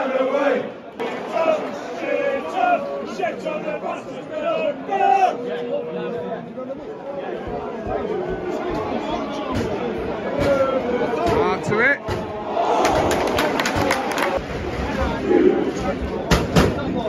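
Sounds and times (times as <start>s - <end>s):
crowd talking and shouting: 0.0s - 17.0s.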